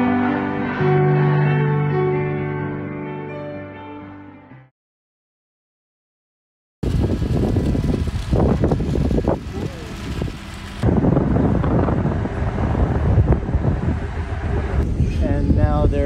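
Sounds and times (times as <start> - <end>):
low steady rumble: 6.8 - 16.0
wind buffeting microphone: 6.8 - 16.0
distant voices: 7.2 - 16.0.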